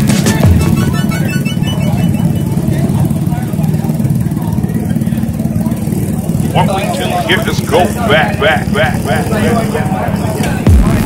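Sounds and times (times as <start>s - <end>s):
motorcycle engines idling: 0.0s - 11.0s
people's voices: 0.0s - 11.0s.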